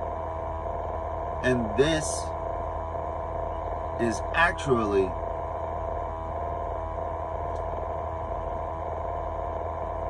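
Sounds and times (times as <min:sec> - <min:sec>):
steady higher tones: 0:00.0 - 0:09.1
low mechanical drone: 0:00.0 - 0:10.0.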